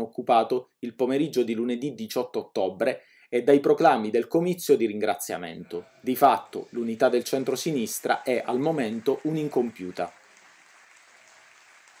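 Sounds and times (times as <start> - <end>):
faint applause: 5.8 - 12.0.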